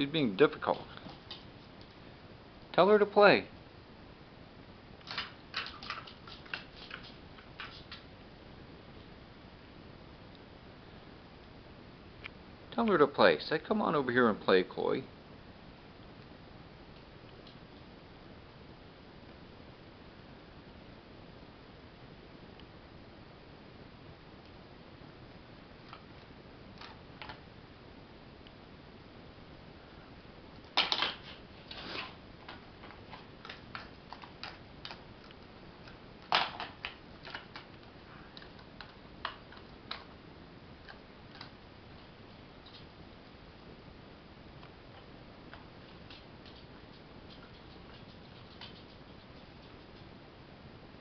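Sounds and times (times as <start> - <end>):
faint hiss: 0.0 - 33.9
puppy claws clicking on hardwood: 32.5 - 37.7
faint irregular ticks: 44.6 - 50.2.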